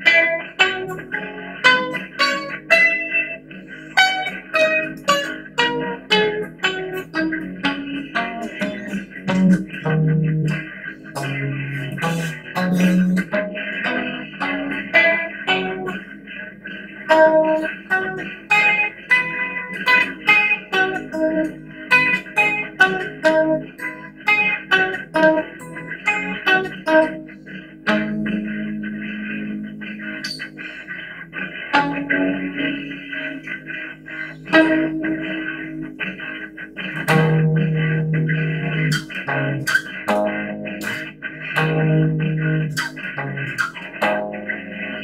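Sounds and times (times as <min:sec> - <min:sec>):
guitar picking single notes: 0:00.0 - 0:45.0.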